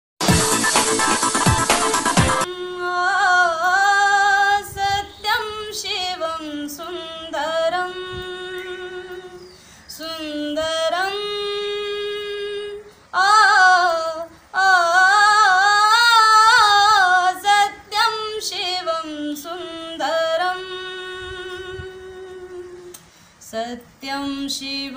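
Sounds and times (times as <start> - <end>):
woman singing unaccompanied: 2.4 - 24.9.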